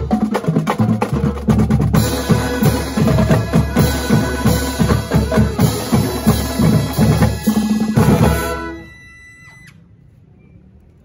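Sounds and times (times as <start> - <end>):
brass chord ringing: 2.0 - 9.0.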